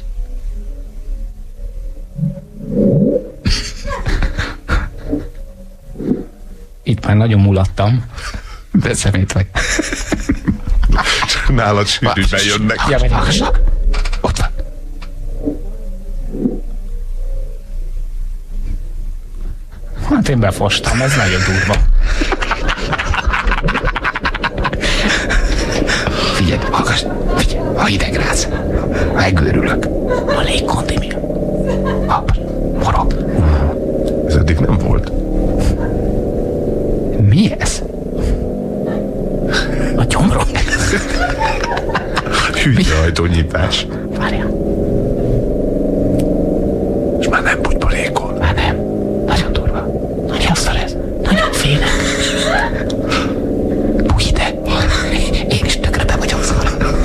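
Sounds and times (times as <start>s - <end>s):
low moaning underwater tones: 0.0s - 6.9s, 12.2s - 22.5s, 23.5s - 57.0s
dense crackling noise with clicks: 0.0s - 20.8s, 46.1s - 46.4s.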